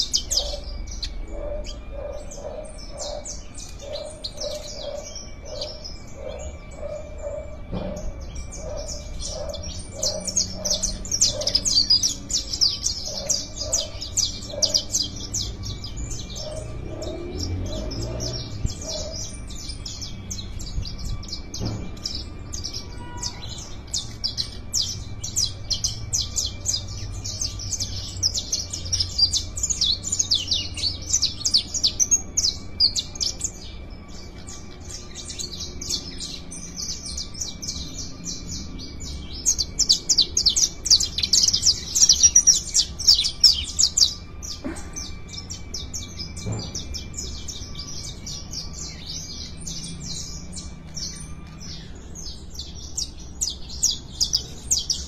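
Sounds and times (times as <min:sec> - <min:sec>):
finches singing trills: 0:00.0 - 0:55.0.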